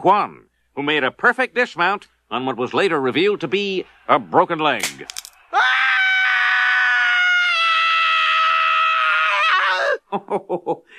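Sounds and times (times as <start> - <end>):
cartoon man screaming in pain: 5.5 - 10.0.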